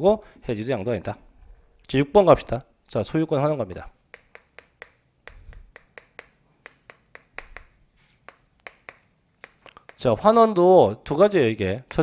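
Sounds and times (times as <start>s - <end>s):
chalk tapping and scratching on chalkboard: 3.7s - 10.5s.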